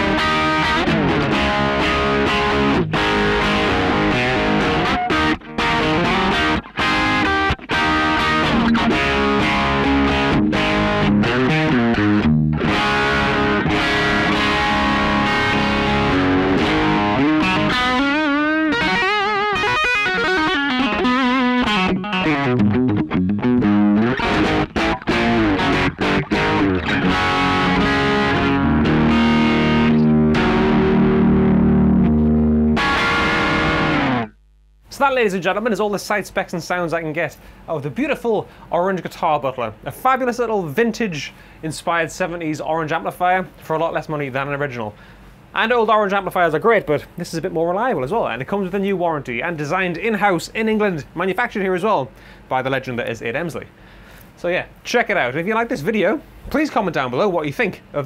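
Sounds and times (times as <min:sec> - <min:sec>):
distorted electric guitar riffs: 0:00.0 - 0:35.0.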